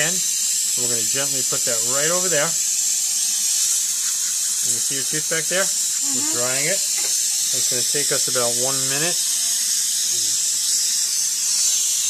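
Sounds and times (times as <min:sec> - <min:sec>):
saliva ejector suction hiss: 0:00.0 - 0:12.0.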